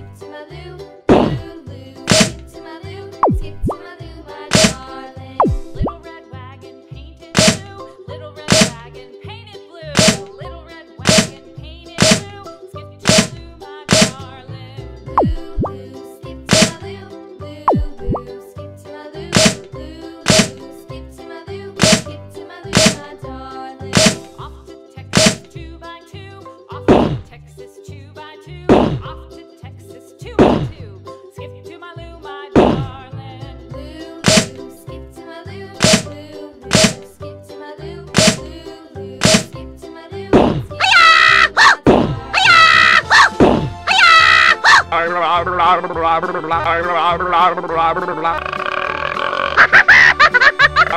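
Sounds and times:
upbeat children's music: 0.0s - 50.9s
cartoon pitch glide: 40.8s - 50.9s.

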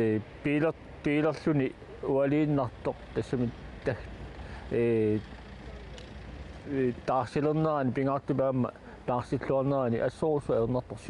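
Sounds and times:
man speaking: 0.0s - 4.1s, 4.7s - 5.3s, 6.6s - 11.0s
low outdoor rumble: 0.0s - 11.0s.

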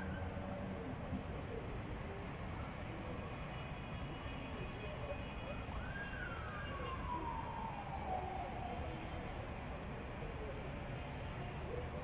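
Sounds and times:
distant city traffic: 0.0s - 12.0s
faraway siren: 2.6s - 9.4s.

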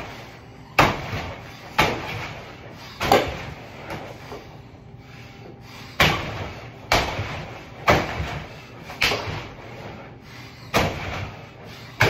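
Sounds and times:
punches on heavy bag: 6.0s - 9.6s, 10.7s - 11.4s.

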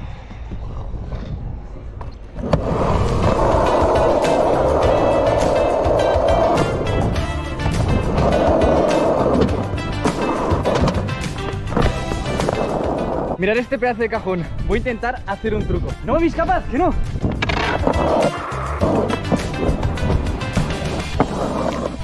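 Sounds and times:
skateboard wheels rolling: 0.2s - 13.4s, 17.3s - 22.0s.

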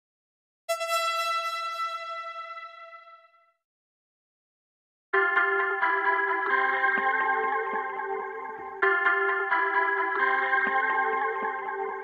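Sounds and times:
held synth note: 0.7s - 3.3s.

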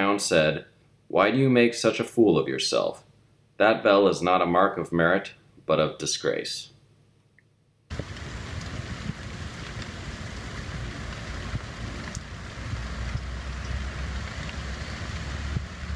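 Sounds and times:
low rumble: 7.9s - 15.9s
rain falling: 7.9s - 15.9s.

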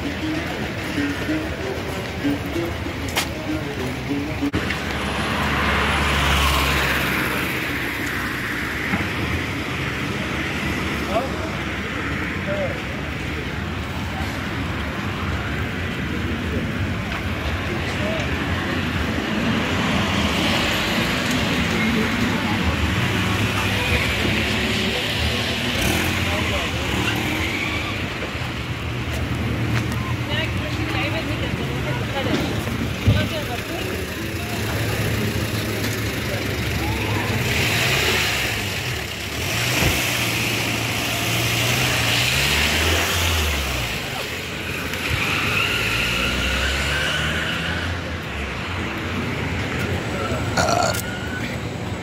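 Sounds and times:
car engines running: 0.0s - 52.0s
people's voices: 0.0s - 52.0s.

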